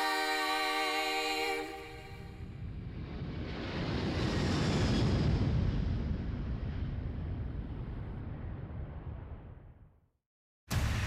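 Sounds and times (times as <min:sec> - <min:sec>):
jet aircraft roar overhead: 0:02.9 - 0:06.9.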